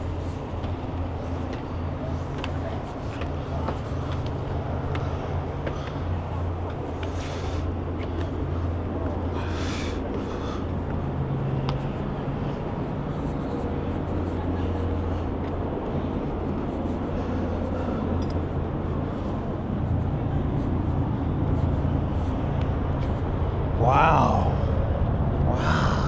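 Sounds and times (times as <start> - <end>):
road traffic hum: 0.0 - 26.0.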